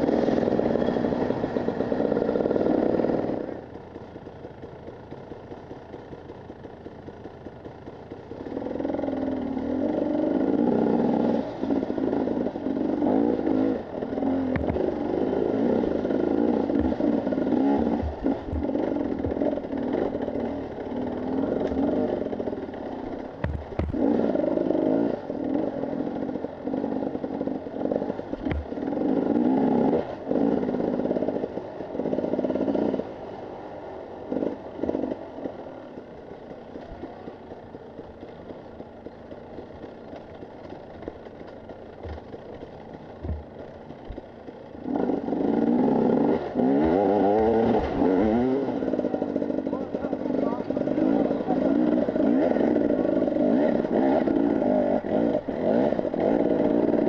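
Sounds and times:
motorcycle engine revving: 0.0 - 57.0
sharp knocks from motorcycle: 14.5 - 14.8, 23.4 - 24.0, 28.4 - 28.7, 41.4 - 42.3, 43.2 - 44.2.

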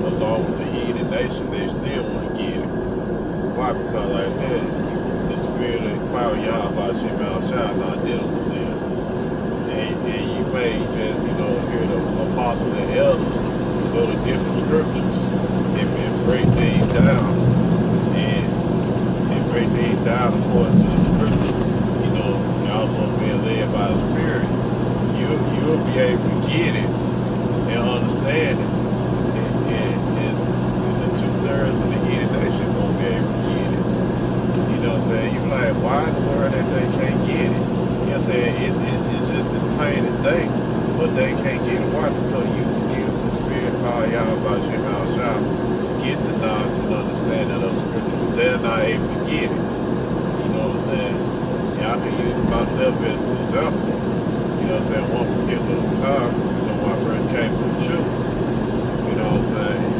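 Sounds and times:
faint indistinct voice: 0.0 - 2.7, 3.5 - 8.8, 9.7 - 17.4, 18.1 - 18.6, 19.3 - 24.5, 25.2 - 26.9, 27.7 - 28.7, 29.3 - 33.8, 34.6 - 49.6, 50.4 - 51.2, 51.8 - 54.0, 54.6 - 58.3, 59.1 - 59.9
car road and engine drone: 0.0 - 59.9.

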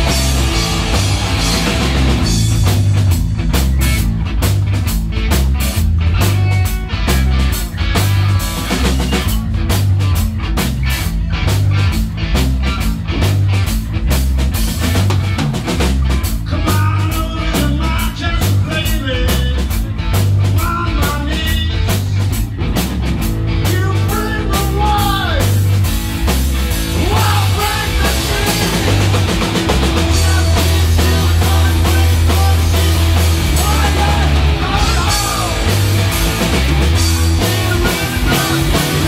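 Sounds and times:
bass guitar: 0.0 - 39.0
distorted electric guitars: 0.0 - 39.0
pounding drum beat: 0.0 - 39.0
lead vocal singing: 26.9 - 36.2, 37.0 - 39.0.

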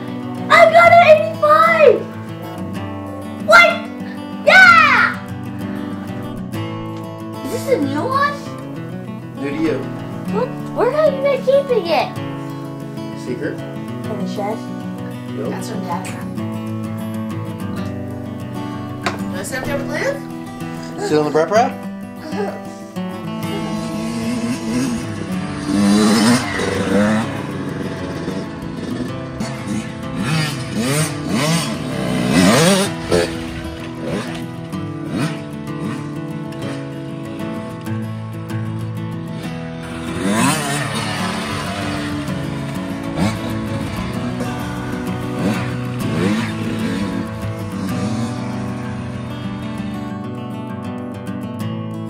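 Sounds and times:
background music: 0.0 - 52.0
dirt bike engine revving: 23.3 - 50.5.

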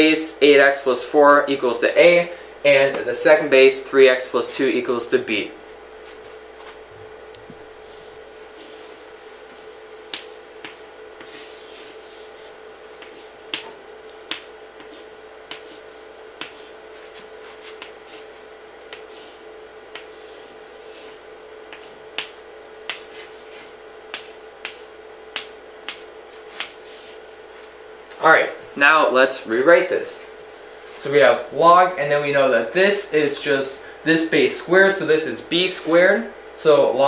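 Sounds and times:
faint steady hum: 0.0 - 37.0
chalk scratching on chalkboard: 7.8 - 27.7
chalk tapping on chalkboard: 9.6 - 12.4, 13.0 - 18.3, 18.9 - 27.2.

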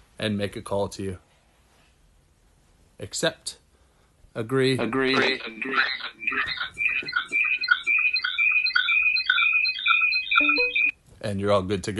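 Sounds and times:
high warbling chirping tones: 5.2 - 10.9.

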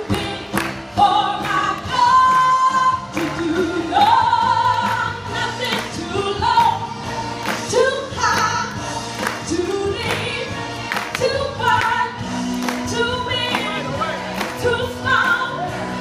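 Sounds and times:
congregation clapping along: 0.0 - 6.0, 6.6 - 16.0
backing music: 0.0 - 16.0.

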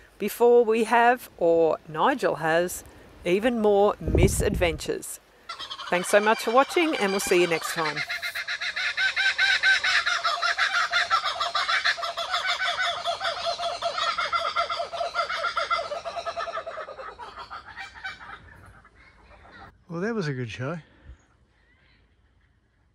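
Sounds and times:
birds calling in chorus: 5.4 - 19.8.

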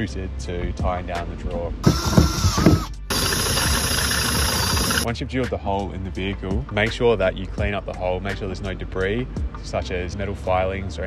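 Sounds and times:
cordless drill boring through steel: 1.8 - 5.1.

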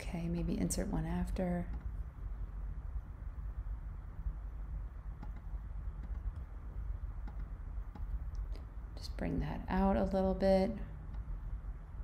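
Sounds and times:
low room hum: 0.0 - 12.0
computer mouse clicks: 1.7 - 2.0, 5.2 - 6.5, 7.2 - 8.6.

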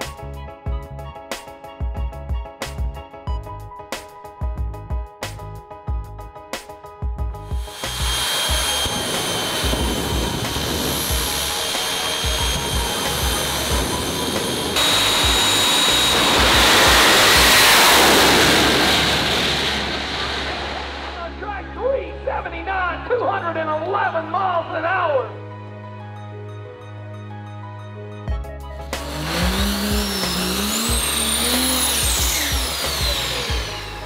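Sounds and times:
background music with a beat: 0.0 - 8.7, 28.3 - 34.0
jet engine whine and roar: 7.5 - 21.4, 28.9 - 34.0.

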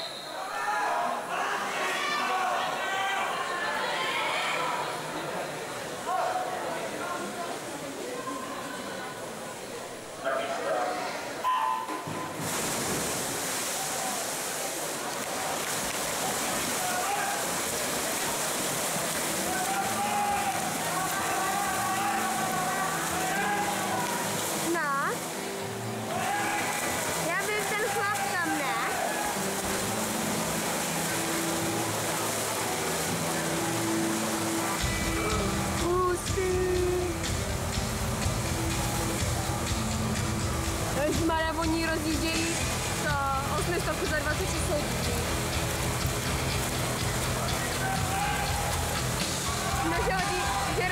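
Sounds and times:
spectators cheering and whistling: 0.0 - 1.0, 34.5 - 35.8, 47.4 - 50.8
swimmers splashing: 0.0 - 50.9.

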